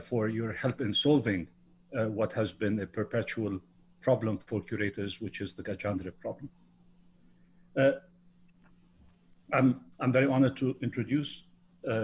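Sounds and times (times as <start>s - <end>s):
man saying uh: 0.0s - 1.4s, 2.0s - 6.5s, 9.5s - 12.0s
faint steady hum: 0.0s - 12.0s.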